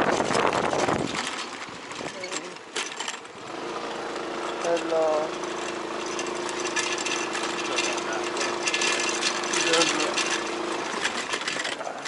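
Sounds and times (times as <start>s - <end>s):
scooter engine humming: 0.0s - 12.0s.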